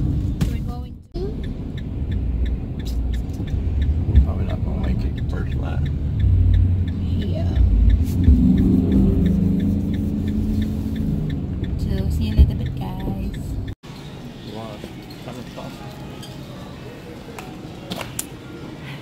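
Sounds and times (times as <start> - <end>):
engine and road rumble: 0.0 - 19.0
light ticking: 1.2 - 13.8.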